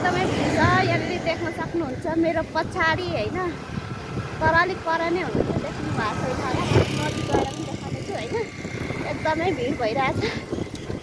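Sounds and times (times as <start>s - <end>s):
woman talking: 0.0s - 3.6s, 4.4s - 10.4s.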